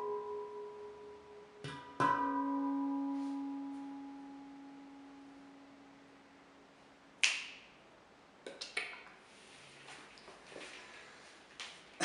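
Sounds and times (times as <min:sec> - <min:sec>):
handpan chord ringing: 0:00.0 - 0:06.7.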